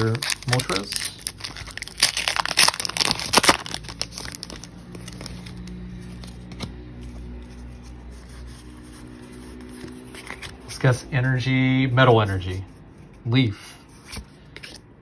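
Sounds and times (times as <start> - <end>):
foil wrapper crinkling and tearing: 0.0 - 7.4.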